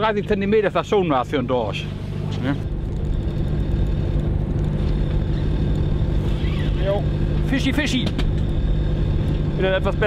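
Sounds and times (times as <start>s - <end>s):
boat engine drone: 0.0s - 10.0s.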